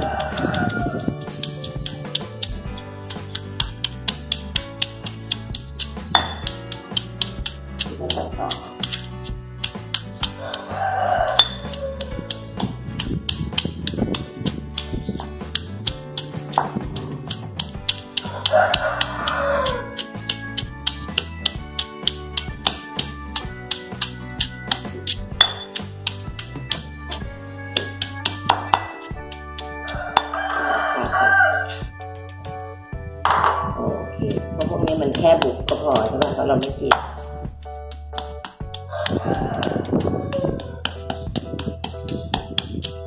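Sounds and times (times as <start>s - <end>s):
stone pestle pounding in mortar: 0.0s - 30.4s, 33.3s - 33.9s, 34.6s - 37.2s, 37.9s - 43.0s
background music: 0.0s - 43.0s.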